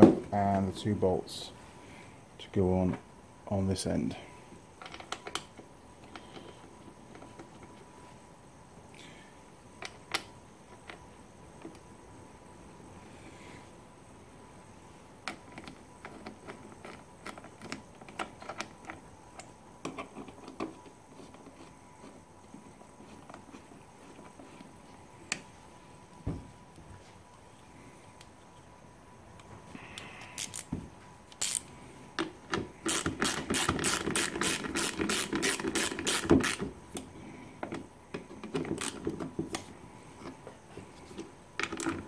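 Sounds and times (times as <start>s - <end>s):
socket wrench clicking: 31.3s - 31.6s.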